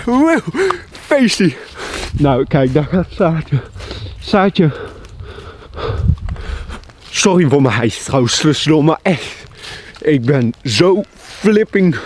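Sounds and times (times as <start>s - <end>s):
man talking: 0.0s - 5.0s, 7.0s - 12.0s
man panting hard: 0.5s - 1.0s, 1.6s - 2.2s, 3.5s - 6.9s, 9.2s - 10.0s.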